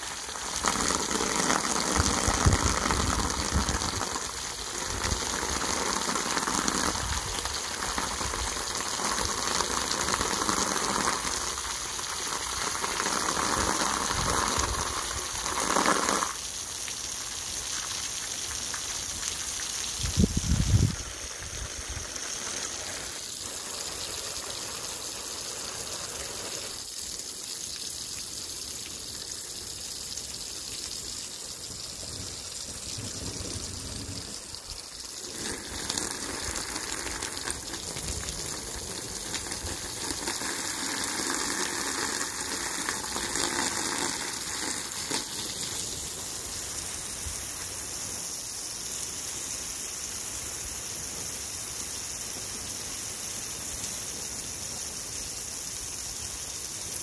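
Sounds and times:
hose spray splashing on wet soil: 0:00.0 - 0:57.0.

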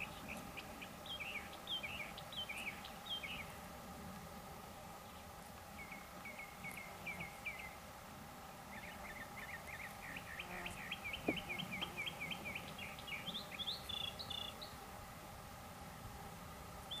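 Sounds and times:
songbird chirping: 0:00.0 - 0:03.6, 0:05.0 - 0:07.8, 0:08.7 - 0:14.8.

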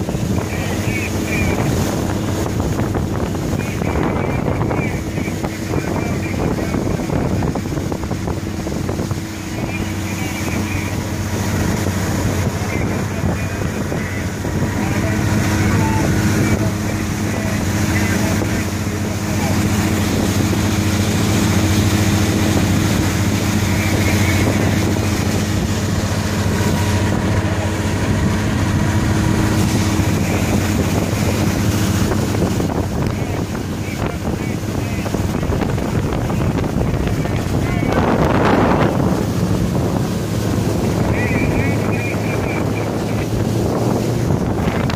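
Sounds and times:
outboard engine droning: 0:00.0 - 0:44.9
wind noise on microphone: 0:00.0 - 0:44.9.

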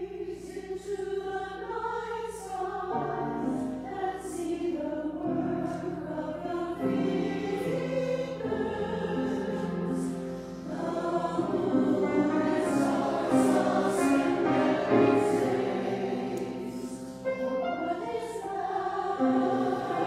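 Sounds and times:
church choir singing: 0:00.0 - 0:20.0.

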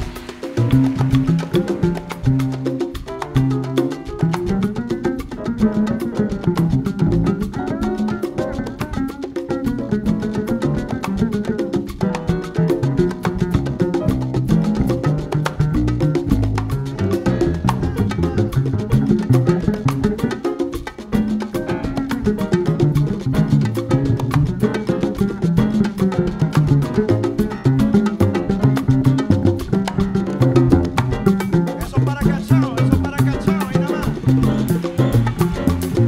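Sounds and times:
big band jazz lines: 0:00.0 - 0:36.0
driving latin percussion: 0:00.0 - 0:36.0.

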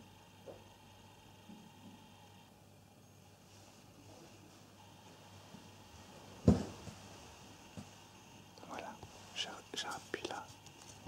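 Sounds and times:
soft whispering: 0:08.6 - 0:11.0.

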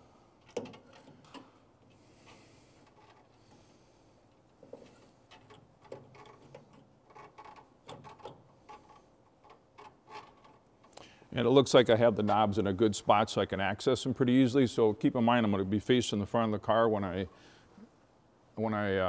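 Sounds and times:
light clicks and knocks of hardware: 0:00.4 - 0:11.0.

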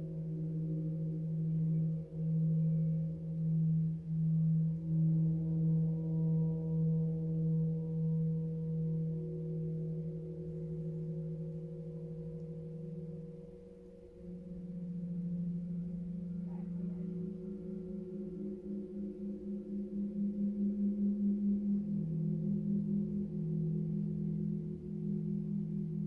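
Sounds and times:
gong humming: 0:14.2 - 0:20.1.

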